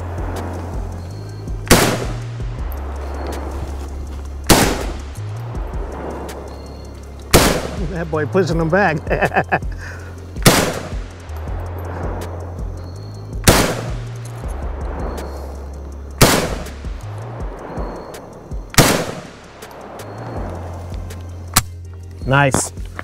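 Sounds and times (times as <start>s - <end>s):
background music with bass line: 0.0s - 23.0s
rifle shots with echo: 1.7s - 2.2s, 4.5s - 5.0s, 7.3s - 7.9s, 10.4s - 11.1s, 13.4s - 14.1s, 16.2s - 16.8s, 18.8s - 19.4s.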